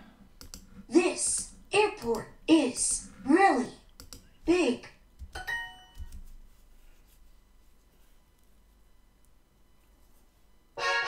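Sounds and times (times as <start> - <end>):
click: 0.4 - 0.6, 3.9 - 4.3.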